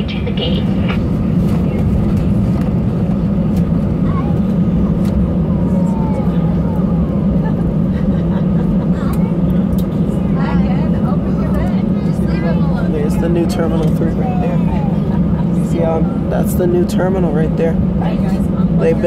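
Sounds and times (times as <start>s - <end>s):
faint voices: 0.0s - 2.3s, 3.1s - 19.0s
jet engines idling drone: 0.0s - 19.0s.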